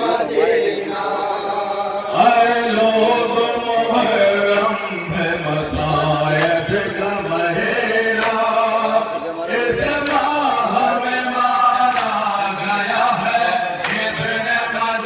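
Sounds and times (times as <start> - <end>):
man chanting a lament through loudspeaker: 0.0 - 15.0
hands slapping chests: 6.3 - 6.8, 8.1 - 8.7, 9.8 - 10.6, 11.8 - 12.4, 13.8 - 14.2.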